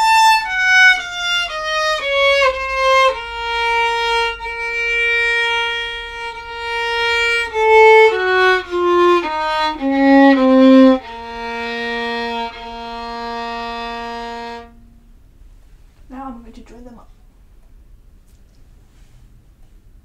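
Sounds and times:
solo violin playing a scale: 0.0s - 15.0s.

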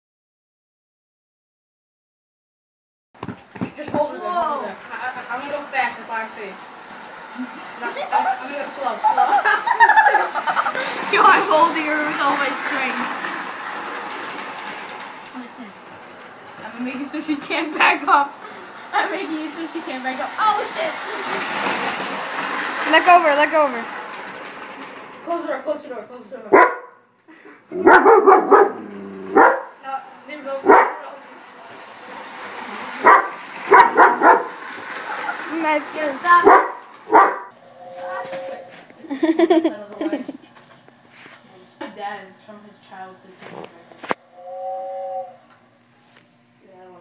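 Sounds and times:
toy train rolling rumble: 3.7s - 26.5s, 28.8s - 40.4s
clicks from wheels and rails: 10.7s - 17.8s, 21.2s - 25.4s, 30.0s - 37.1s
dog barking: 26.5s - 27.0s, 27.7s - 29.8s, 30.6s - 31.0s, 33.0s - 34.6s, 36.4s - 37.5s.

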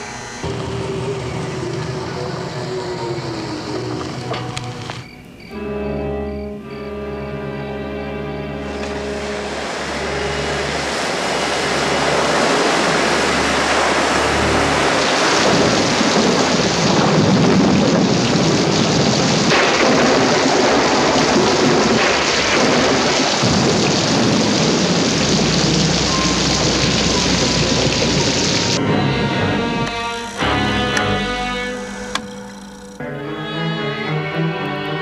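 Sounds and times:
dramatic music: 0.0s - 18.2s, 19.5s - 35.0s
floodwater rushing down street: 0.4s - 31.7s.

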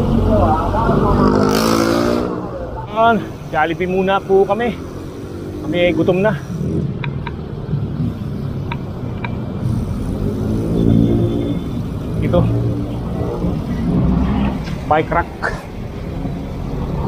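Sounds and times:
street traffic: 0.0s - 17.0s
vehicle engine running: 2.3s - 17.0s.

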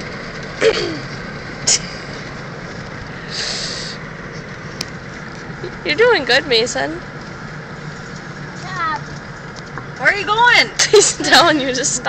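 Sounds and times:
car road and engine noise: 0.0s - 12.0s
person coughing: 0.6s - 1.1s.

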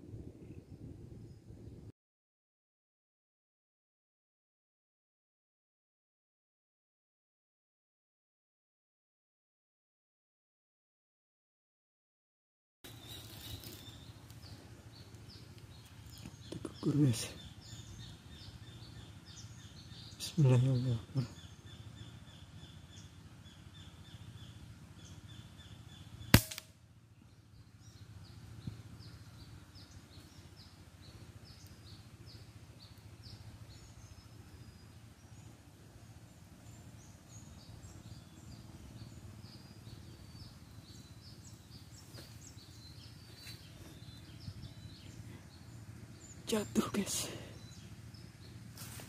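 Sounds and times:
small birds chirping: 12.9s - 49.0s
air rifle shot: 26.3s - 26.8s.

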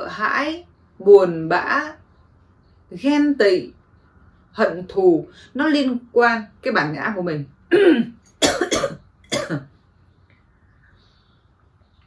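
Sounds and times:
woman coughing: 7.7s - 9.7s.

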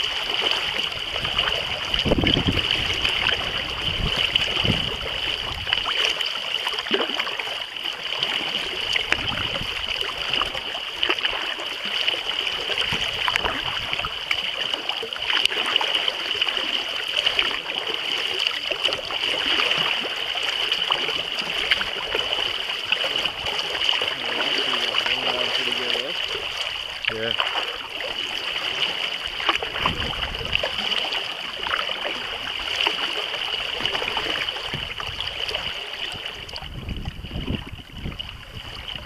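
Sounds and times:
water splashing against kayak hull: 0.0s - 39.0s.

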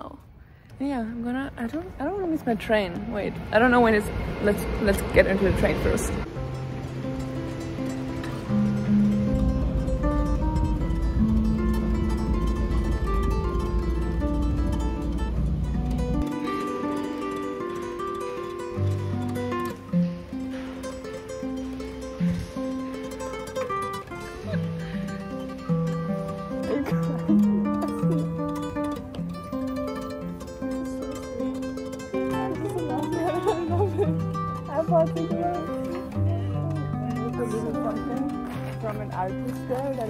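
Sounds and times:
low steady rumble: 0.0s - 16.3s
plucked string melody: 1.3s - 40.0s.

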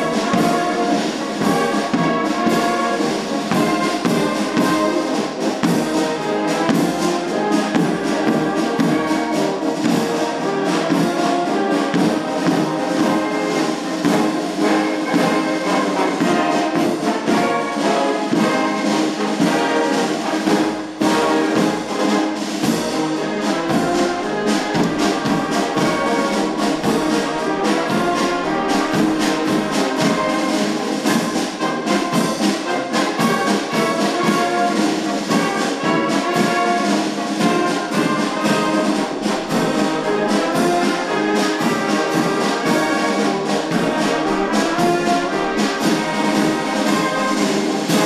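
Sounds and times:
wind band playing: 0.0s - 48.0s.

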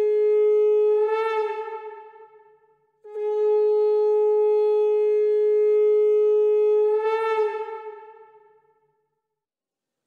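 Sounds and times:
conch shell blown: 0.0s - 9.0s.

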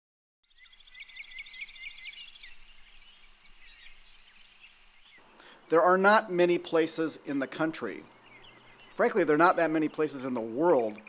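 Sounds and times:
bird chirps: 0.4s - 6.7s, 7.3s - 11.0s
songbird trilling: 0.5s - 5.8s, 7.3s - 11.0s
outdoor background noise: 0.5s - 11.0s.

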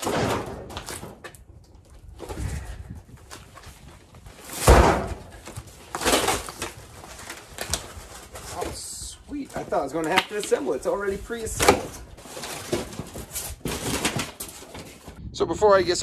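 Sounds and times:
heavy box thump: 4.6s - 5.3s
cardboard scraping: 11.5s - 15.2s.

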